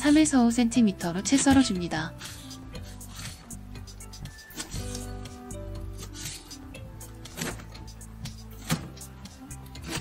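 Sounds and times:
background music sustained tones: 0.0s - 10.0s
knife cutting on plastic board: 1.2s - 10.0s.

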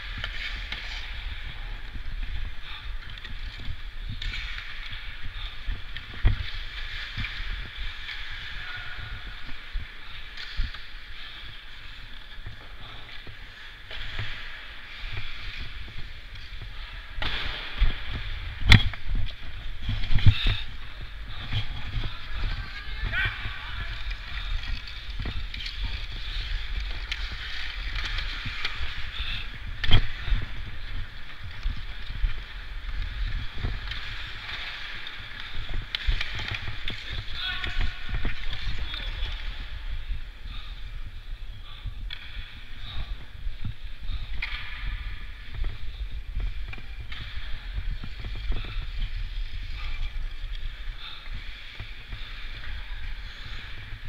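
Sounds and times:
voices echoing in arena: 7.4s - 32.6s, 33.2s - 54.0s
wind rumble on microphone: 15.0s - 54.0s.

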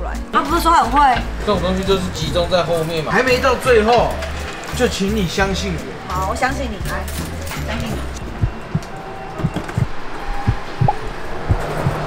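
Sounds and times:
music with low beat: 5.4s - 12.0s
held electronic tones: 8.2s - 12.0s.

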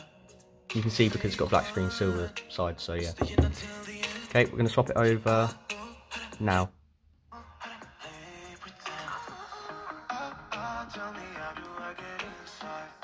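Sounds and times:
song through phone speaker: 0.0s - 6.7s, 7.3s - 13.0s.

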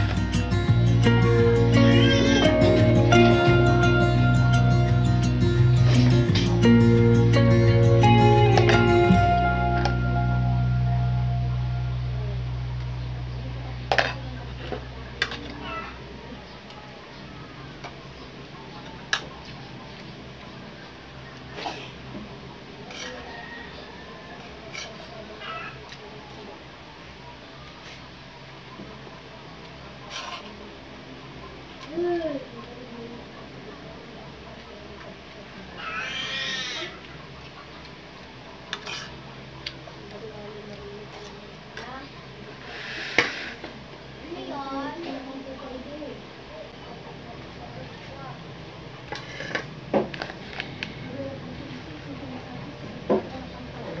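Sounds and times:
cat meowing: 1.8s - 2.6s, 35.8s - 37.0s.

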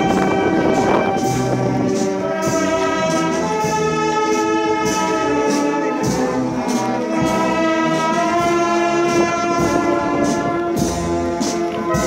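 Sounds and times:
brass band playing a march: 0.0s - 12.0s
percussion strokes: 0.0s - 12.0s.

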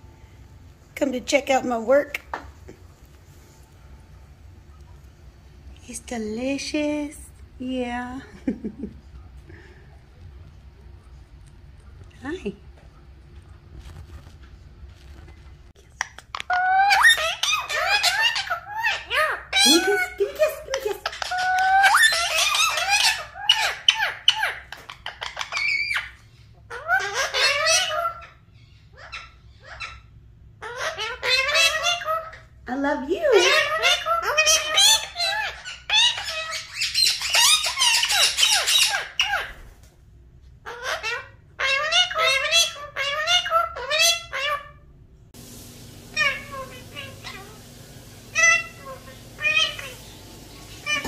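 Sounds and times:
parakeets chattering and squeaking: 16.3s - 39.7s, 40.6s - 44.8s, 45.4s - 51.0s.

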